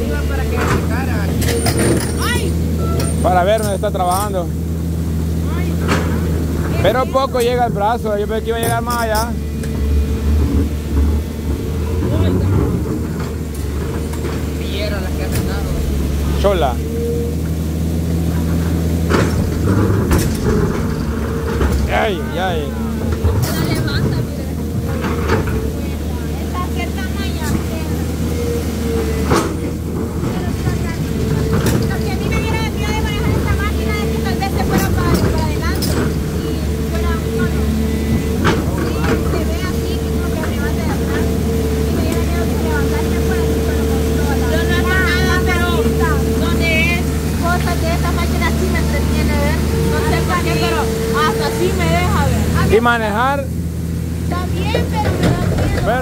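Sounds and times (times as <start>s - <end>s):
excavator diesel engine running: 0.0s - 56.0s.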